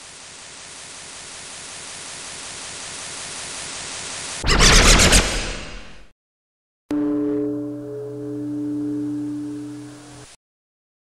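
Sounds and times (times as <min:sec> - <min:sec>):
steady low tone: 0:06.9 - 0:10.4.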